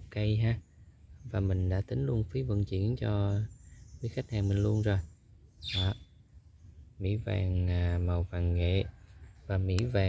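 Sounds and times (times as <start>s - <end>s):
high bird chirp: 0.2s - 7.4s.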